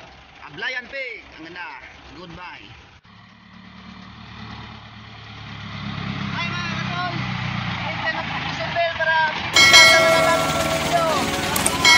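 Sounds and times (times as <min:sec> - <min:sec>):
truck engine approaching: 0:02.8 - 0:08.4, 0:09.5 - 0:11.9
bright ringing chime: 0:09.6 - 0:11.9.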